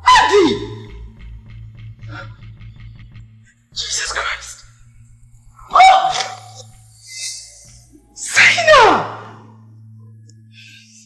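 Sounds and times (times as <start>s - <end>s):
woman shouting: 0.0s - 0.9s, 5.7s - 6.5s, 8.3s - 9.3s.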